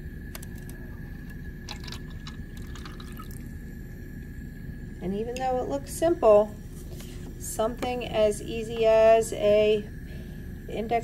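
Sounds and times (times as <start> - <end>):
water trickling into cup: 0.9 - 3.6
water drips and splashes: 1.7 - 3.4.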